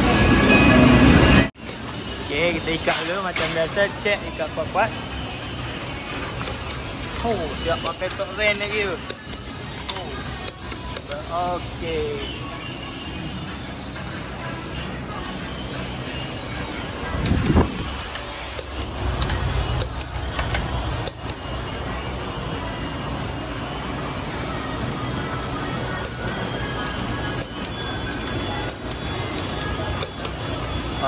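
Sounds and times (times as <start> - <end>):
faint music: 0.0 - 31.0
sharp metallic clicks and knocks: 6.3 - 6.9, 17.2 - 21.4.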